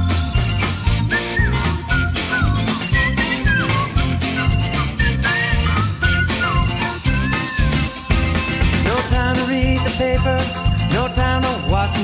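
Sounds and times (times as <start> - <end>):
bass guitar: 0.0 - 12.0
drum beat: 0.0 - 12.0.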